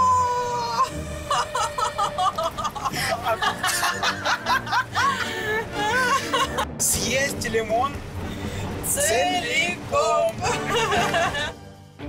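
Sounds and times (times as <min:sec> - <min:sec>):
background music: 0:00.0 - 0:12.0
person laughing: 0:00.7 - 0:06.8, 0:10.4 - 0:11.6.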